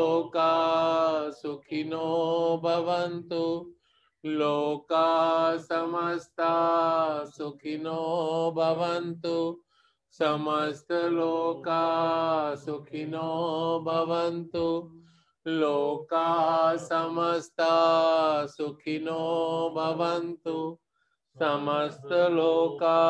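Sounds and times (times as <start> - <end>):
man chanting: 10.2 - 14.9, 15.5 - 20.8, 21.4 - 23.0.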